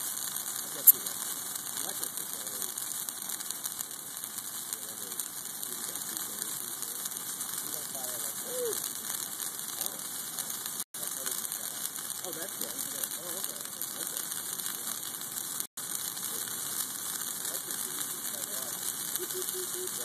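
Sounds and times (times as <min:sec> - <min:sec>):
bonfire crackling and hissing: 0:00.0 - 0:20.0.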